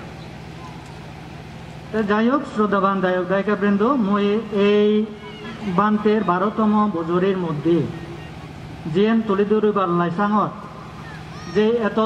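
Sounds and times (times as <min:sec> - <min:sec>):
low hum and hiss: 0:00.0 - 0:12.0
man talking: 0:01.9 - 0:08.2, 0:08.8 - 0:10.6, 0:11.4 - 0:12.0.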